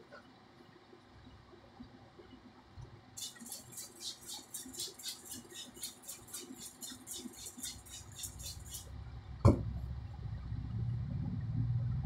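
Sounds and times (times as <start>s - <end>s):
low motor-like hum: 8.9s - 12.0s.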